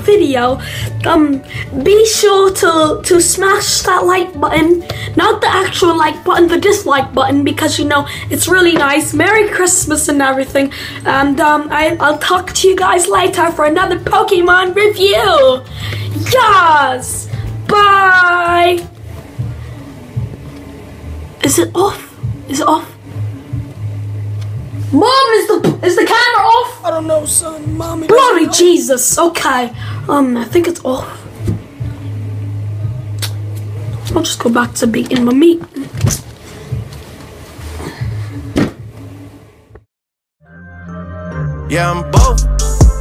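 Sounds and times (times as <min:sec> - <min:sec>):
music: 0:00.0 - 0:43.0.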